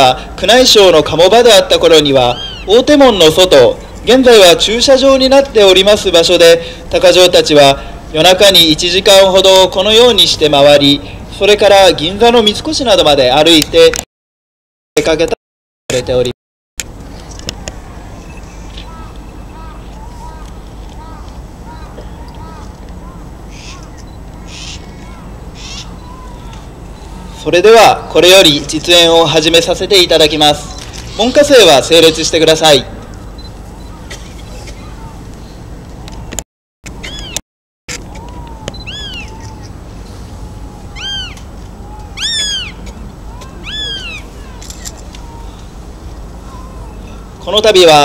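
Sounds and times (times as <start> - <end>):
harsh high bird calls: 1.9 - 4.2, 17.8 - 28.2, 37.0 - 37.4, 38.2 - 48.0
murmur of outdoor crowd: 17.0 - 31.5, 32.8 - 36.3, 37.9 - 47.9.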